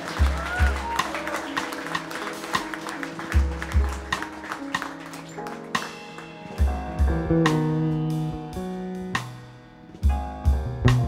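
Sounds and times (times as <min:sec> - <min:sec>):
heavy kick drum beats: 0:00.0 - 0:01.1, 0:03.4 - 0:04.4, 0:06.6 - 0:07.9, 0:10.0 - 0:11.0
jazz band playing: 0:00.0 - 0:11.0.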